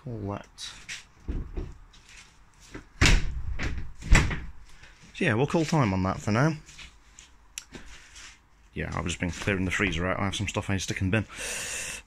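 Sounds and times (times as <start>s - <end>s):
door slamming shut: 3.0s - 4.5s.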